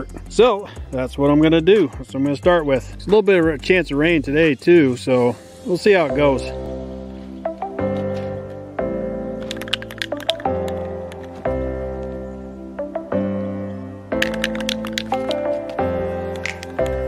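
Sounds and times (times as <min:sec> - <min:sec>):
held chords: 0:05.7 - 0:17.0
sharp percussive clicks: 0:09.4 - 0:11.4, 0:14.2 - 0:17.0.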